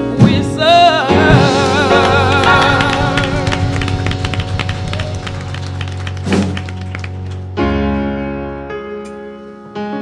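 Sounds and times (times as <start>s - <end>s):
held keyboard chord: 0.0s - 10.0s
congregation hand claps: 1.4s - 7.6s.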